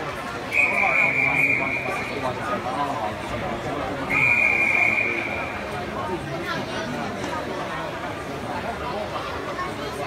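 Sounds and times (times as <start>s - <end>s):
background chatter: 0.0s - 10.0s
referee's whistle blast: 0.5s - 2.2s, 4.1s - 5.6s.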